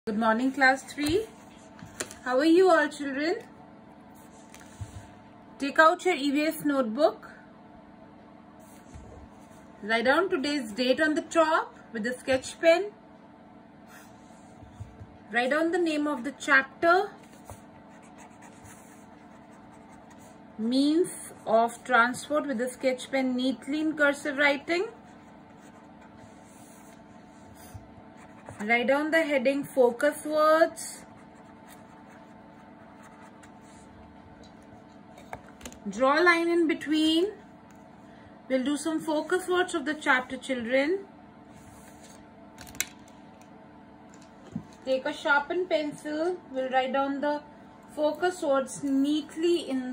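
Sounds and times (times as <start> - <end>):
felt-tip pen writing on paper: 17.6 - 20.4.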